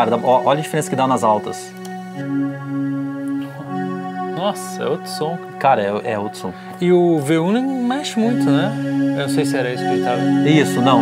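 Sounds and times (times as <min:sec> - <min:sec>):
synthesizer sustained chords: 0:00.0 - 0:11.0.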